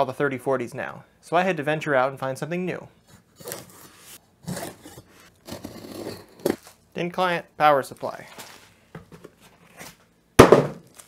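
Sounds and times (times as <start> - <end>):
bubble wrap rustling: 6.2 - 6.9, 7.9 - 10.1, 10.8 - 11.0.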